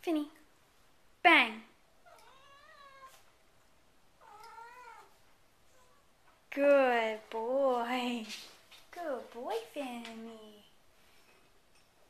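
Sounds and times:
cat meowing: 0:02.0 - 0:03.2, 0:04.2 - 0:05.1.

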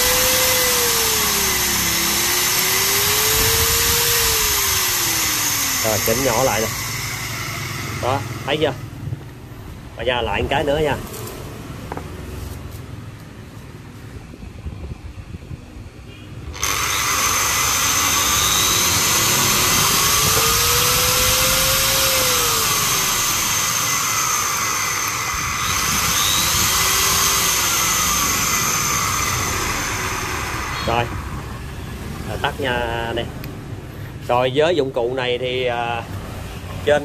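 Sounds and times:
angle grinder running: 0:00.0 - 0:09.0, 0:16.5 - 0:31.6.

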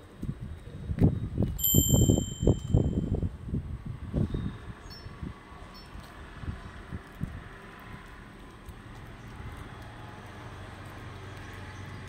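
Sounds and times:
bright chime: 0:01.6 - 0:03.2.

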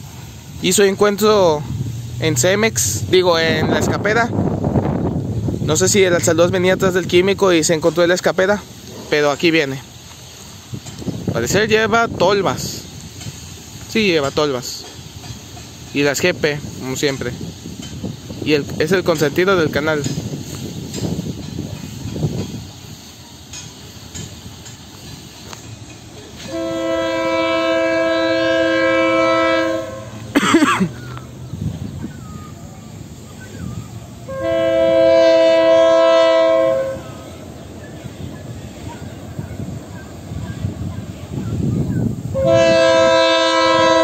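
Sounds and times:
train rumbling: 0:00.0 - 0:44.0
locomotive air horn blasts: 0:26.4 - 0:30.4, 0:34.2 - 0:37.2, 0:42.3 - 0:44.0.

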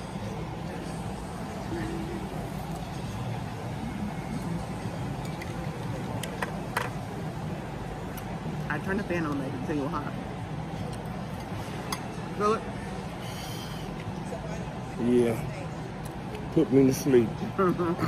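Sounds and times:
dining room hum: 0:00.0 - 0:18.0
murmur of voices: 0:00.0 - 0:18.0.

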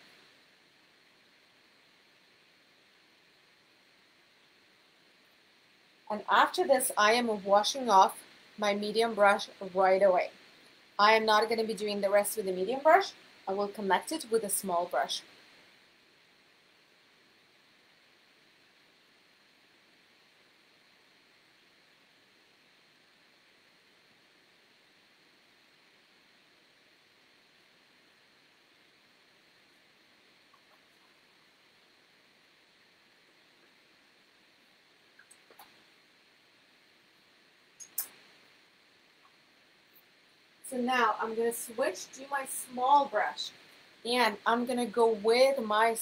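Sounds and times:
faint steady hiss: 0:00.0 - 0:46.0
faint clicks: 0:35.1 - 0:35.8.

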